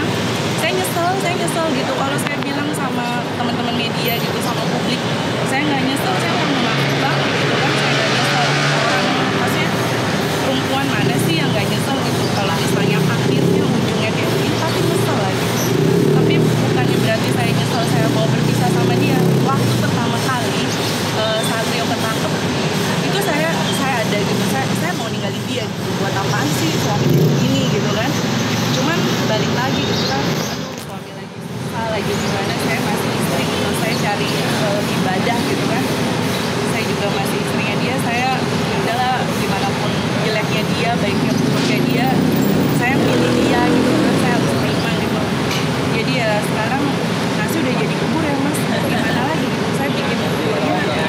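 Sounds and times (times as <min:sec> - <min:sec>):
speech: 0:00.0 - 0:36.0, 0:36.6 - 0:51.0
woman talking: 0:00.0 - 0:36.0, 0:36.6 - 0:51.0
steady background noise: 0:00.0 - 0:51.0.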